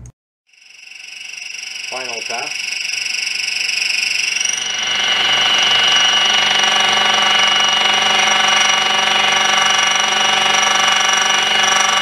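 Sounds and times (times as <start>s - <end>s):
mill spindle whining: 0.5s - 12.0s.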